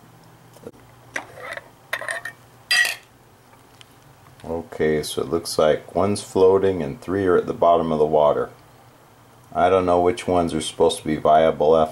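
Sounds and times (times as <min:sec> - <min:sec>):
metal lid scraping on glass jar: 0:01.2 - 0:03.0.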